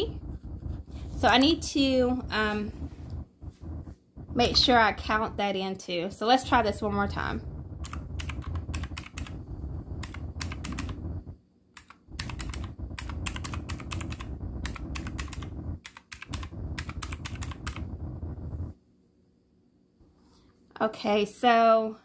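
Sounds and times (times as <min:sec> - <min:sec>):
calculator keys clicking: 0:07.8 - 0:09.3, 0:10.0 - 0:11.0, 0:11.8 - 0:17.8.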